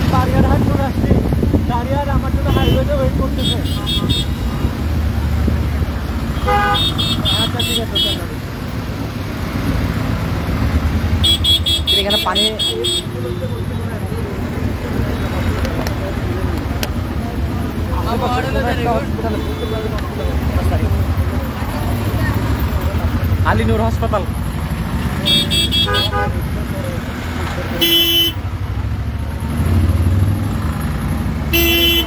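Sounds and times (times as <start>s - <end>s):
vehicle engines rumbling: 0.0s - 32.0s
car horns beeping: 2.4s - 5.0s, 6.3s - 8.4s, 11.1s - 13.9s, 19.1s - 20.5s, 25.1s - 26.6s, 27.7s - 28.5s, 31.5s - 32.0s.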